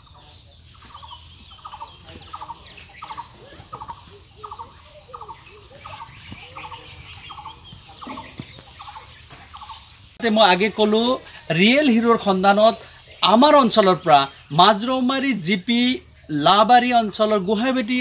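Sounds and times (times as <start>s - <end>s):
bird calling: 0.0s - 18.0s.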